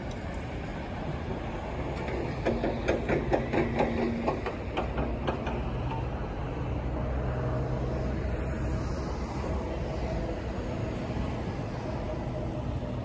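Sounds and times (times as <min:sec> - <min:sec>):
distant traffic rumble: 0:00.0 - 0:13.0.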